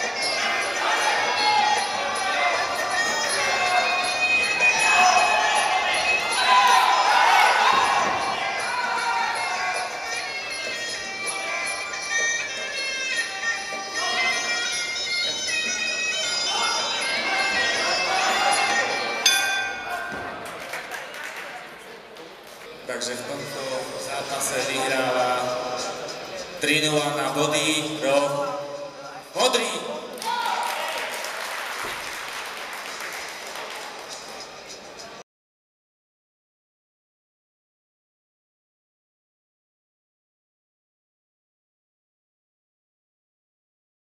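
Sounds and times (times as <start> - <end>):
crowd applauding: 19.9 - 22.8, 30.1 - 34.8.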